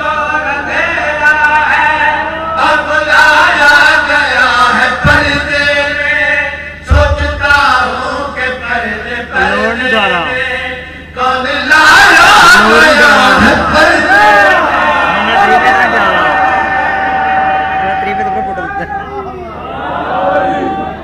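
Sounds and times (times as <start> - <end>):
man chanting into a microphone: 0.0 - 14.6.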